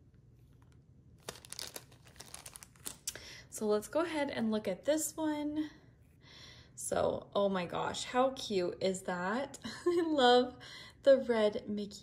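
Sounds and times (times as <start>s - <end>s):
plastic bags crinkling: 1.2s - 3.2s.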